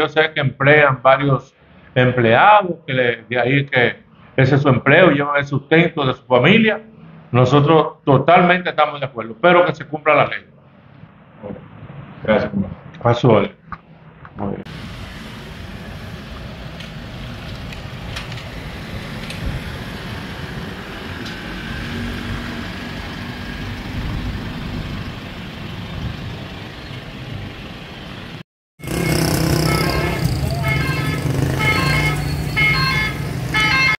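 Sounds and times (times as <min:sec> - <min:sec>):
street traffic rumble: 0:00.0 - 0:33.9
loud steady tones: 0:28.8 - 0:33.9.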